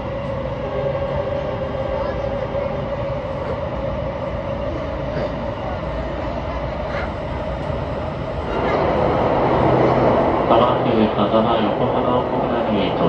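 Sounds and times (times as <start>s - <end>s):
wheels rumbling on rails: 0.0s - 13.0s.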